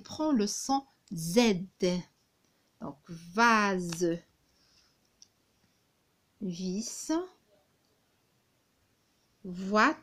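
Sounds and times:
woman speaking: 0.0s - 2.2s, 2.8s - 4.3s, 6.4s - 7.4s, 9.4s - 10.0s.

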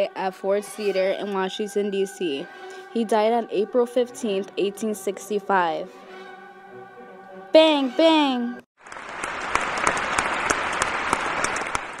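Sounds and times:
audience applause: 8.8s - 12.0s.

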